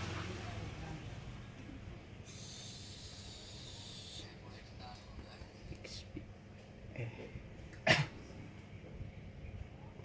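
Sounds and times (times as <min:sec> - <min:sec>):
faint whispered voice: 0:02.2 - 0:07.5.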